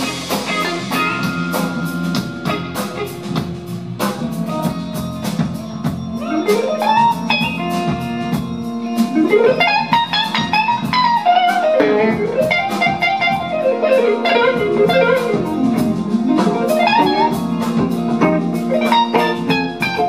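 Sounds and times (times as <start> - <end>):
electric guitar solo: 0.0 - 3.4, 6.1 - 20.0
drum kit: 0.0 - 20.0
rhythm guitars: 0.0 - 20.0.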